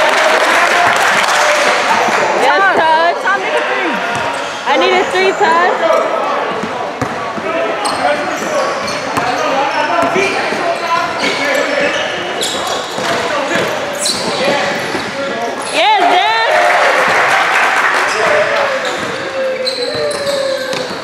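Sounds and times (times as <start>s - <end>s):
sneakers squeaking: 1.9s - 15.9s, 18.0s - 21.0s
basketball bouncing on court: 6.5s - 9.4s, 10.0s - 15.1s, 19.9s - 21.0s
voices calling out: 17.9s - 21.0s.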